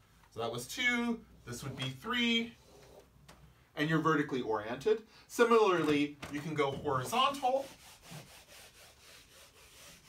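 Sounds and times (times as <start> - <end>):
eraser rubbing on whiteboard: 7.1 - 10.0.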